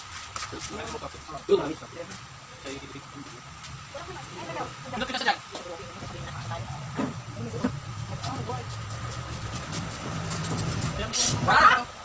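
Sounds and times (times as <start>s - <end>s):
low mechanical hum: 1.0s - 12.0s.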